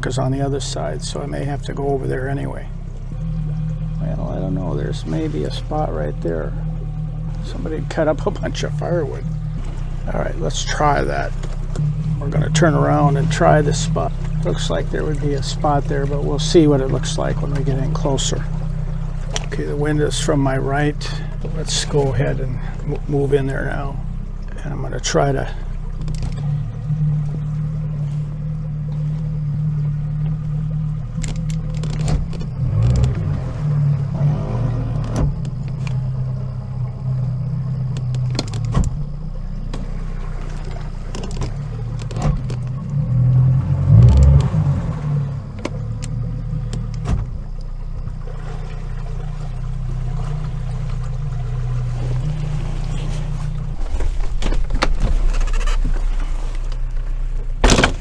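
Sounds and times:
outboard motor running: 0.0 - 58.0.

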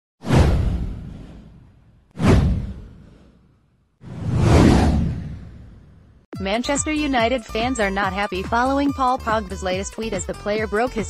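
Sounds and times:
deep boom: 0.2 - 3.3, 4.1 - 6.2
whoosh: 0.2 - 6.3.

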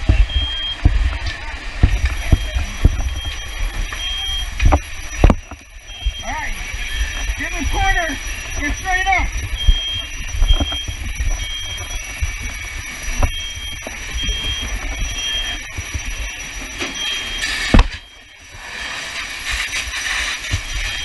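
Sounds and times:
electronic alarm beeping: 0.0 - 21.0
steady low rumble: 0.0 - 21.0.

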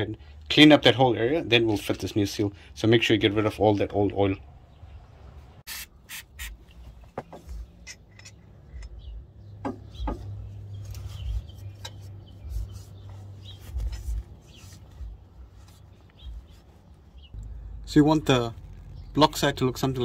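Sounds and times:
small handling clicks and knocks: 6.7 - 12.2.

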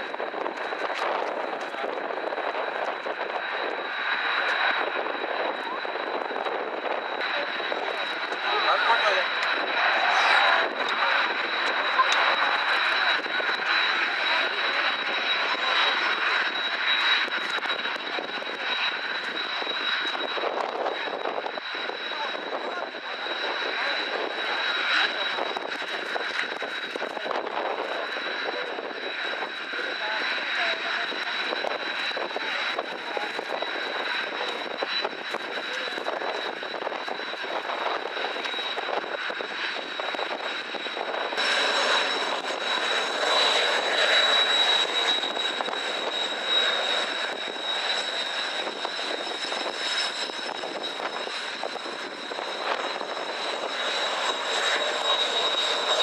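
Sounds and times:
jet engines whining and roaring: 0.0 - 56.0.

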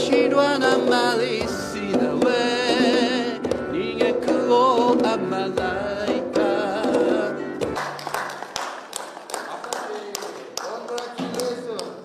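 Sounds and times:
people clapping: 7.6 - 12.0.

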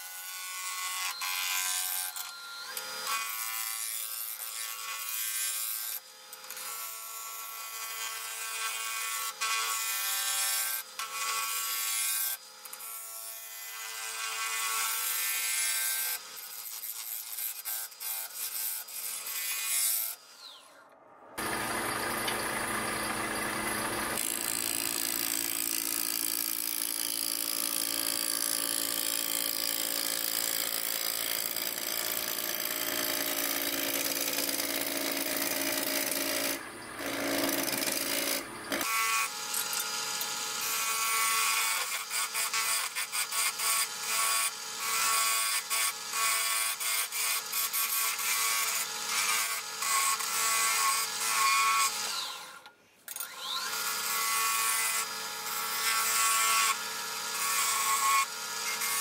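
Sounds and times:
wood lathe humming: 21.4 - 38.9.

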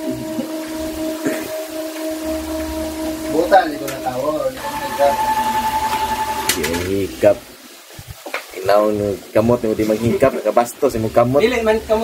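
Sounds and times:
electric fans humming: 0.0 - 12.0.

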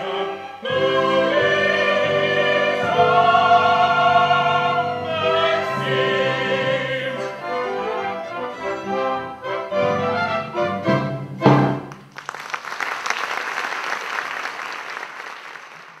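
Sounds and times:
orchestra playing: 0.0 - 12.0
audience applause: 11.9 - 16.0.

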